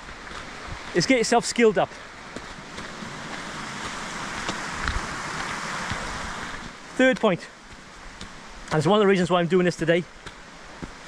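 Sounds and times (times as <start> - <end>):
footsteps on gravel: 0.0 - 8.9, 10.2 - 11.0
steady rushing noise: 0.0 - 11.0.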